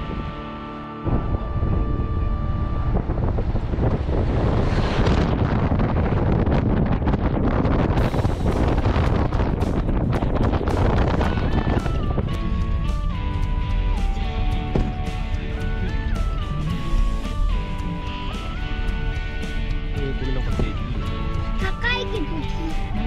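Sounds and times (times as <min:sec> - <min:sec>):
wind buffeting microphone: 0:00.0 - 0:23.0
background music: 0:08.0 - 0:23.0.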